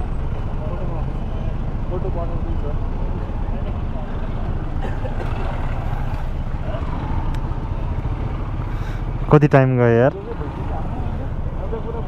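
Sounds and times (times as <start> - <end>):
bus idling: 0.0 - 12.0
motorcycles idling: 0.0 - 12.0
street traffic rumble: 0.0 - 12.0
people talking: 9.3 - 12.0.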